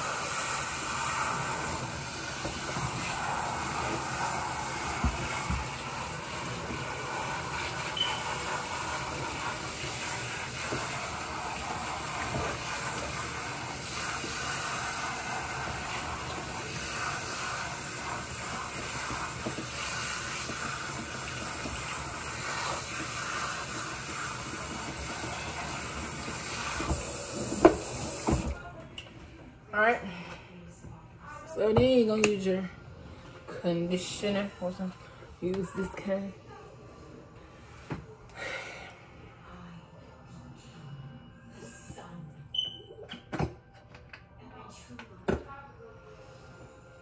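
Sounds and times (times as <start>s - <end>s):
sink sprayer running: 0.0s - 28.6s.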